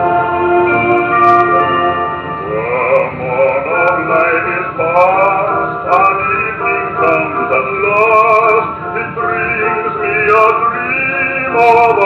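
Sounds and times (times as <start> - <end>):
singing with vibrato on old record: 2.3 - 12.0.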